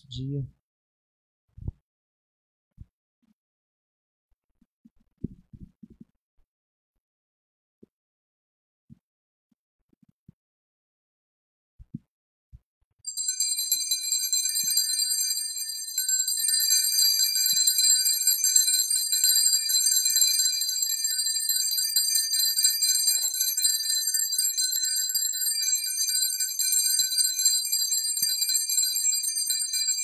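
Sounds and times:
small bells jingling: 13.1 - 30.0.

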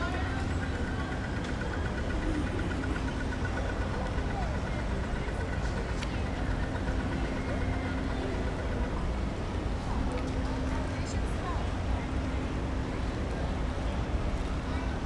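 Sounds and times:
passers-by talking: 0.0 - 15.0
vehicle engine idling: 0.0 - 15.0.

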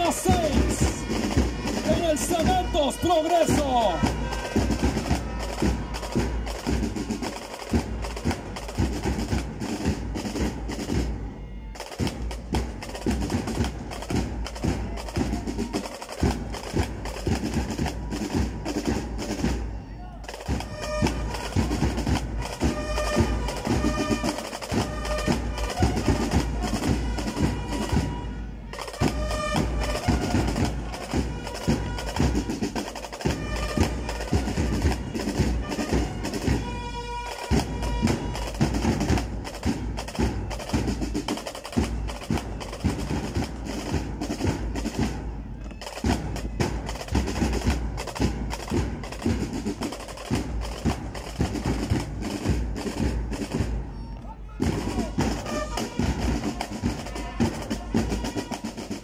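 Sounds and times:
snare drums marching beat: 0.0 - 59.0.

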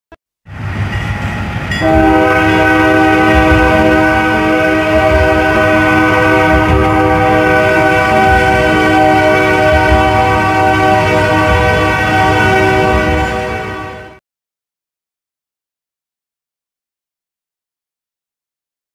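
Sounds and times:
passing train running: 0.5 - 14.2
locomotive air horn blast: 1.8 - 14.2.

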